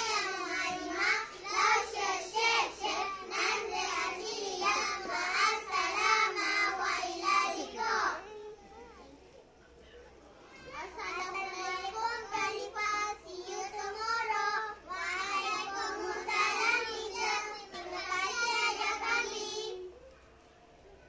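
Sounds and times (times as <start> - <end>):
children chanting in unison: 0.0 - 8.2, 10.8 - 19.9.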